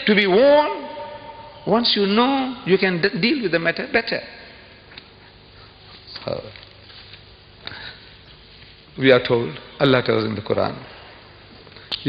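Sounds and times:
man speaking: 0.0 - 4.5
faint steady hiss: 0.0 - 12.0.

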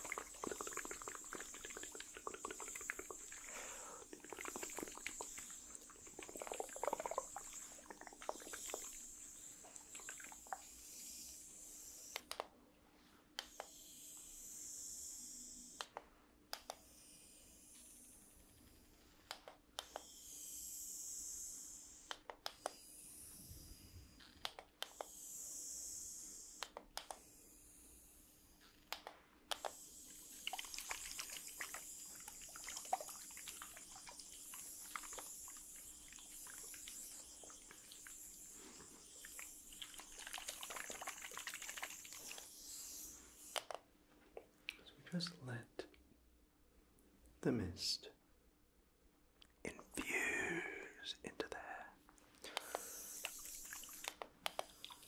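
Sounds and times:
spray bottle hissing: 0.0 - 12.2, 29.5 - 43.8, 52.6 - 55.0
spray bottle pump clicks: 28.8 - 38.5, 39.1 - 43.8, 52.5 - 55.0.

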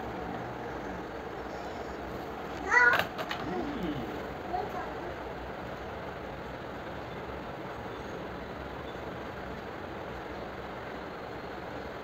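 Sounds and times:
steady hiss and rumble: 0.0 - 12.0.

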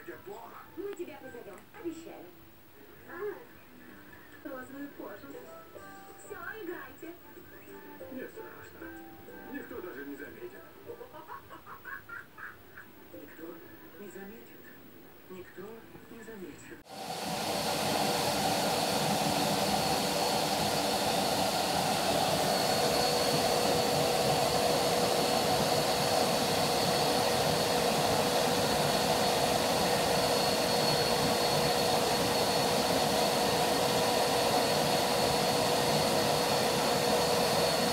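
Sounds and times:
vacuum cleaner running: 16.8 - 37.9.

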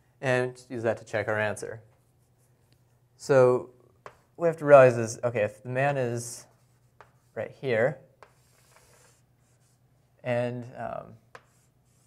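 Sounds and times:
pen scratching on paper: 8.2 - 9.8, 11.4 - 12.0.

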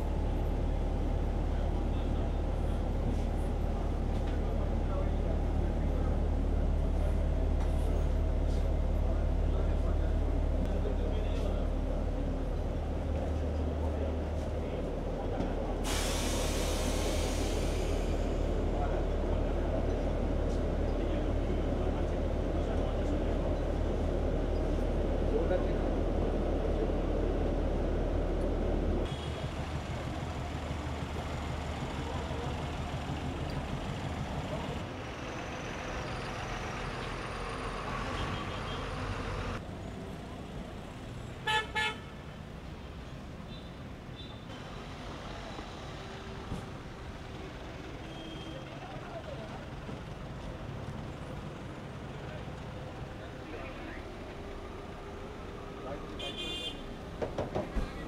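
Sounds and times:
city street traffic rumble: 0.0 - 58.0
vehicle horn honking: 56.2 - 56.9.

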